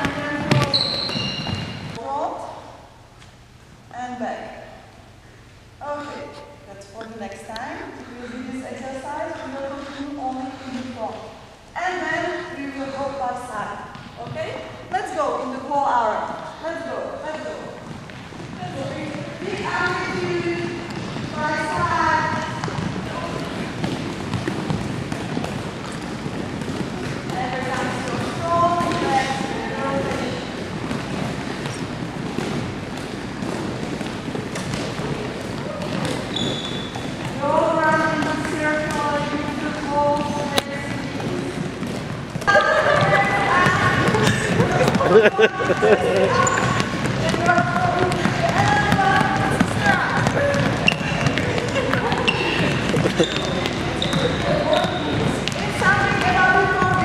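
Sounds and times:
balls bouncing on wooden floor: 0:00.0 - 0:02.0, 0:06.9 - 0:15.4, 0:17.2 - 0:57.0
footsteps on court: 0:00.0 - 0:02.0, 0:17.3 - 0:57.0.

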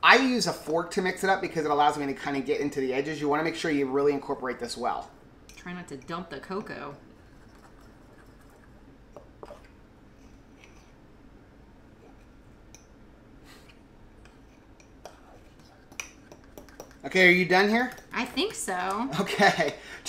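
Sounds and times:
fork stirring batter in mug: 0:07.2 - 0:11.0, 0:14.2 - 0:18.6.

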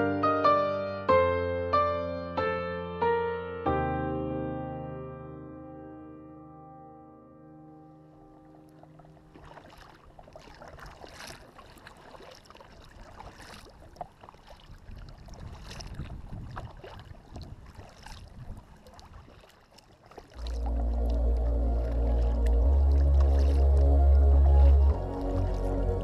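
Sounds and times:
piano music: 0:00.0 - 0:09.5, 0:20.4 - 0:26.0
paddle splashing in water: 0:08.1 - 0:26.0
water dripping: 0:18.8 - 0:26.0.

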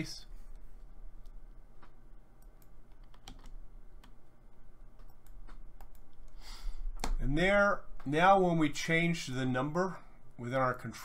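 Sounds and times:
steady low hum: 0:00.0 - 0:11.0
computer keyboard keystrokes: 0:01.2 - 0:04.2, 0:05.0 - 0:06.2.

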